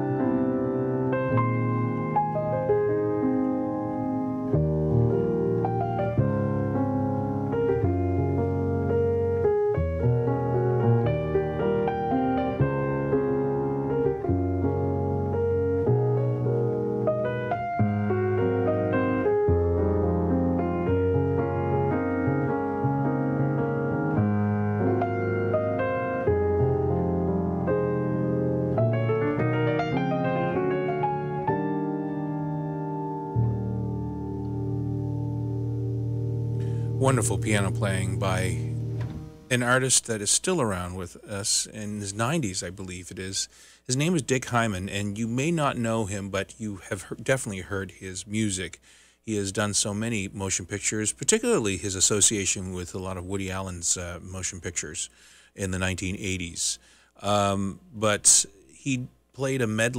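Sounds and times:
solo jazz piano: 0.0s - 48.8s.

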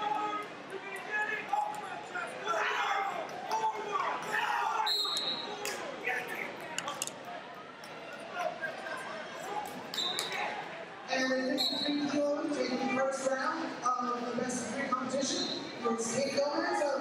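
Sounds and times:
many voices talking and calling out: 0.0s - 17.0s.

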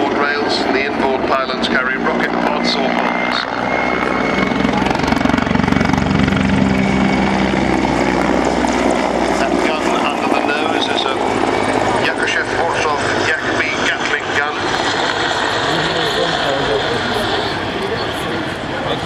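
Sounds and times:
helicopter rotor beating: 0.0s - 19.0s
turboshaft engines running: 0.0s - 19.0s.

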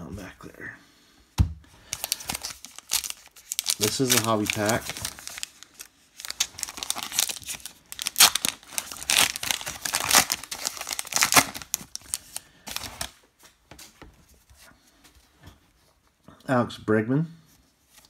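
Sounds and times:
wrapper tearing and crinkling: 1.9s - 13.2s.

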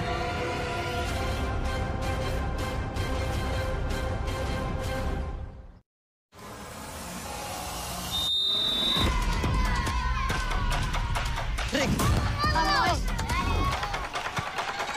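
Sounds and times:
referee's whistle blowing: 8.1s - 9.1s
players and spectators shouting: 8.9s - 14.9s.

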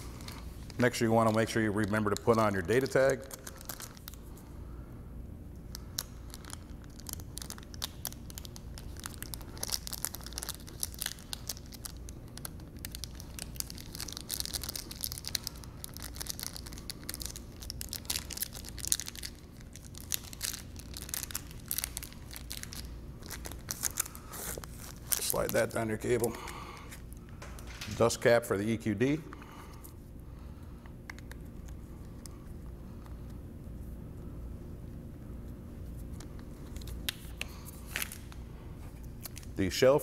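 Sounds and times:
tag crinkling and rustling: 0.0s - 4.3s, 5.7s - 28.4s
small clicks and crackles: 5.6s - 25.7s.

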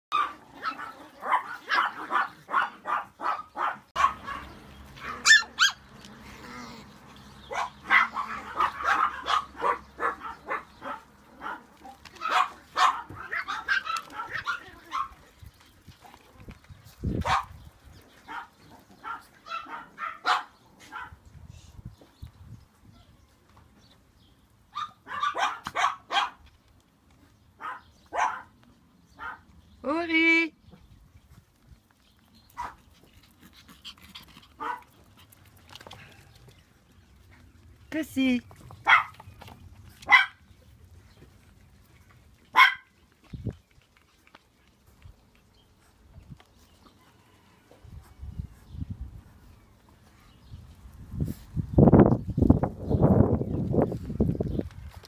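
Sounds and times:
small dogs barking: 0.1s - 15.3s, 17.2s - 21.2s, 24.7s - 26.4s, 27.6s - 29.5s, 32.5s - 35.4s, 38.8s - 39.3s, 40.0s - 40.5s, 42.4s - 43.1s.

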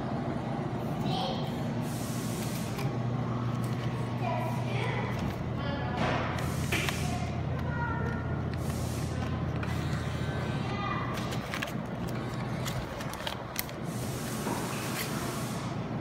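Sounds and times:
claw machine electrical hum: 0.0s - 16.0s.

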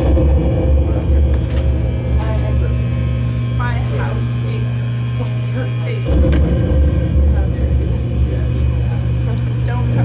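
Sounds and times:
electrical hum: 0.0s - 10.0s
loud low electronic rumble: 0.0s - 10.0s.

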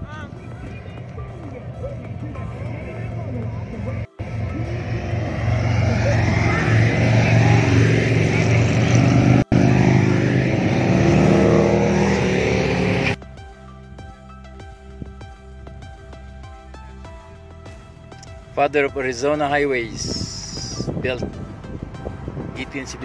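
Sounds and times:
motorcycle engines approaching: 0.0s - 13.2s.

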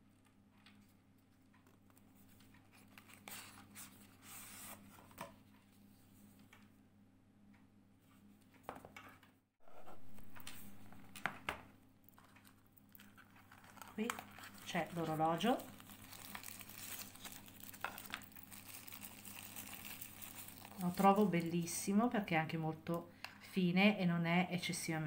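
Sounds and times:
faint steady hum: 9.6s - 25.0s.

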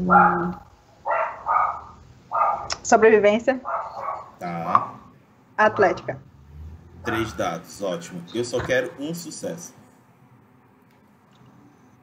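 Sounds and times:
dog barking: 0.0s - 2.7s, 3.6s - 5.1s
person speaking: 4.4s - 5.0s, 5.6s - 6.2s, 7.1s - 9.8s.

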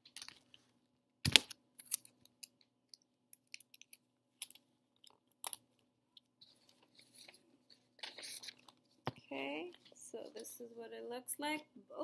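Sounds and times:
paper rustling: 6.4s - 9.2s.

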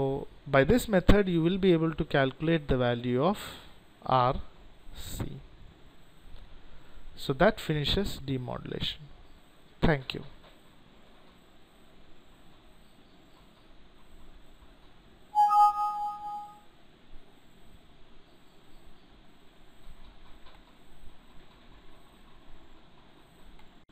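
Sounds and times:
faint room hiss: 0.0s - 23.8s
bright alert chime: 15.4s - 16.6s.

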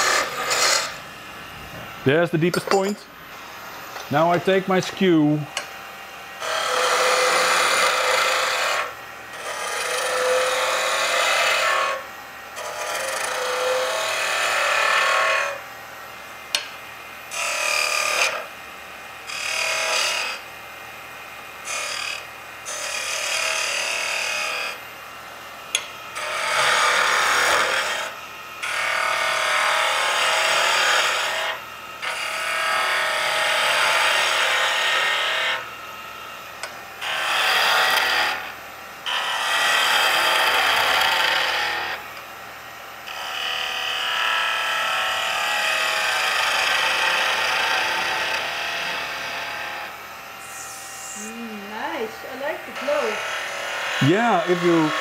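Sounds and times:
chisel cutting wood on lathe: 0.0s - 1.0s, 6.4s - 12.0s, 12.6s - 15.6s, 17.3s - 18.5s, 19.3s - 20.4s, 21.6s - 24.8s, 25.7s - 35.6s, 36.6s - 42.0s, 43.0s - 55.0s.

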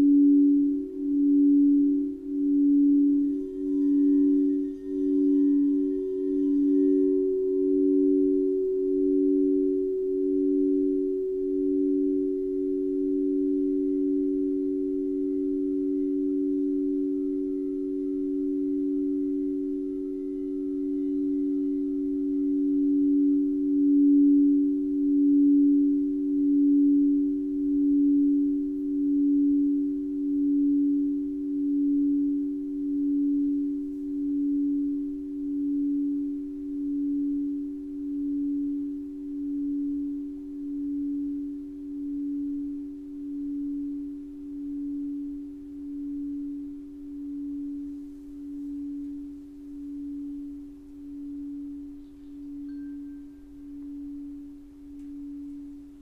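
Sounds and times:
singing bowls ringing: 0.0s - 56.0s.

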